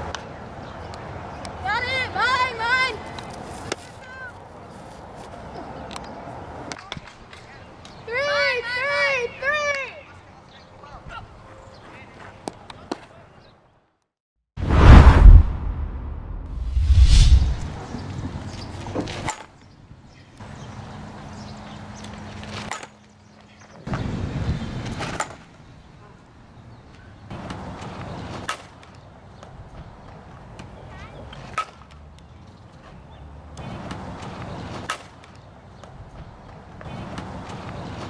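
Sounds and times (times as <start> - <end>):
outdoor background noise: 0.0 - 38.0.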